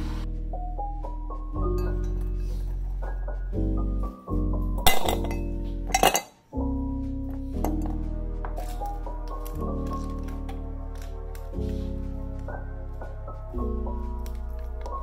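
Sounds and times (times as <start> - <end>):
background music: 0.0 - 15.0
ice cubes clinking in glass: 6.0 - 6.3.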